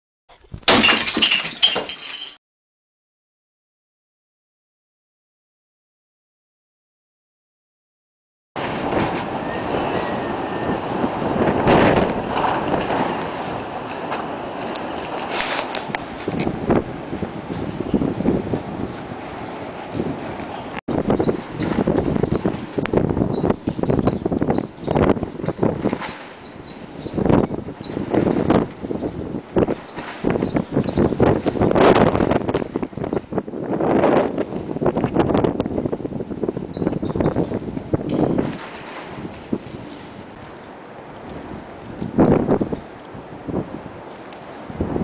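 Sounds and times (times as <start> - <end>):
window glass smashing: 0.5 - 2.4
broken glass tinkling: 0.7 - 2.4
wind rustling: 8.6 - 45.0
microphone handling noise: 20.0 - 40.4.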